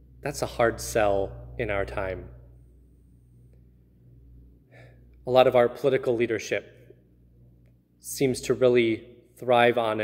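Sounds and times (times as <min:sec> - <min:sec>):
faint low hum: 0:00.0 - 0:10.0
man speaking: 0:00.2 - 0:02.4, 0:05.2 - 0:06.7, 0:08.0 - 0:10.0
man's intake of breath: 0:04.6 - 0:05.2.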